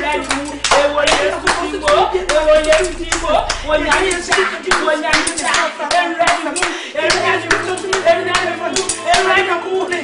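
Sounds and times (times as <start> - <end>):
people clapping: 0.0 - 9.4.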